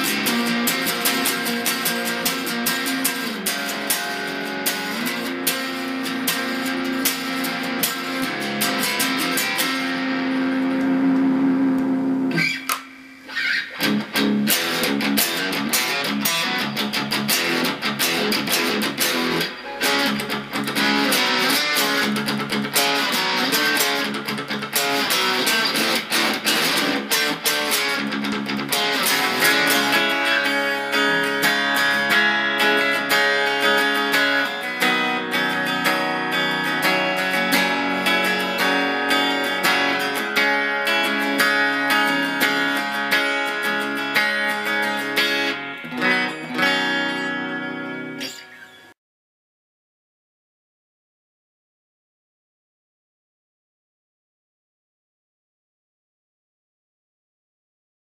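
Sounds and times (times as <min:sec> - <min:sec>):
electric guitar playing: 0:00.0 - 0:48.9.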